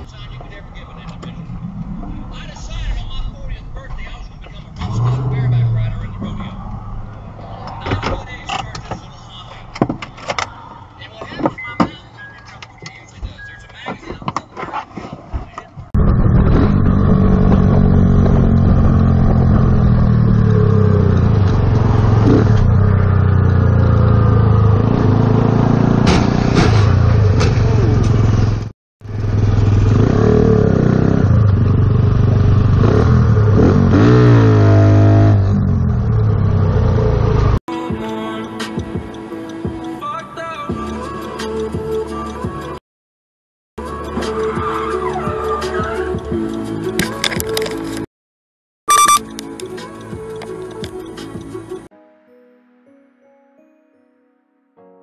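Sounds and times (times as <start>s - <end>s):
wind and road noise: 0.0s - 37.6s
motorcycle engine running: 27.9s - 33.6s.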